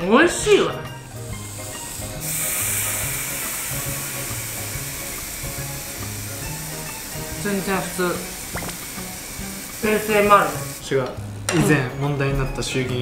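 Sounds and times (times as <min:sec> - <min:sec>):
background music with bass line: 0:00.0 - 0:13.0
sauce sizzling on hot plate: 0:00.9 - 0:11.5.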